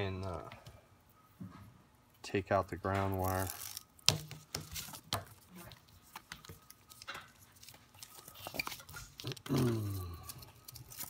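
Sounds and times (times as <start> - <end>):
light crinkling of cable: 2.9 - 3.9, 4.8 - 11.0.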